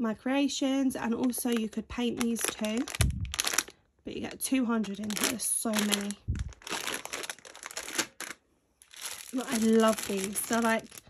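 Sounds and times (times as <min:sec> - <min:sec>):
plastic bag crinkling: 0:01.0 - 0:11.0.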